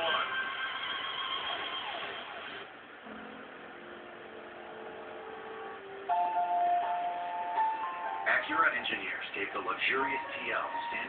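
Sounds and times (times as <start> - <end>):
steady music tones: 2.8 - 11.0.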